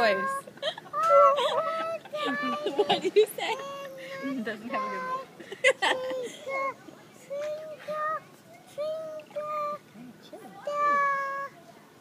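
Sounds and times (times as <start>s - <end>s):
toddler singing: 0.0s - 9.8s, 10.6s - 11.6s.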